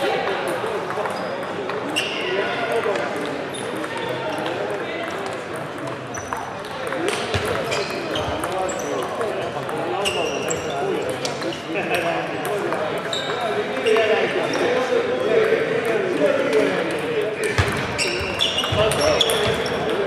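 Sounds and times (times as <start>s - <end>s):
babble of voices in hall: 0.0s - 20.0s.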